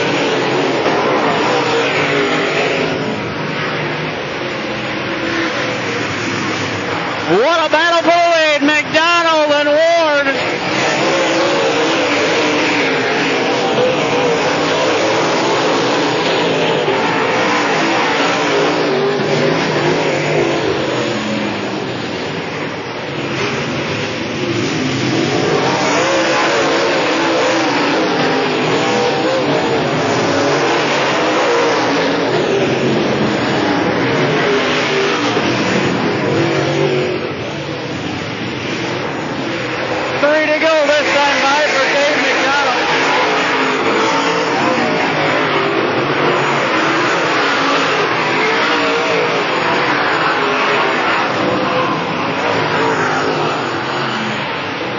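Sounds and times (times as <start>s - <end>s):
race car engines running hard: 0.0s - 54.9s.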